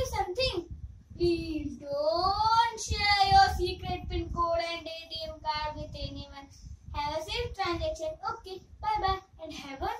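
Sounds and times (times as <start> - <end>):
boy singing unaccompanied: 0.0 - 9.9.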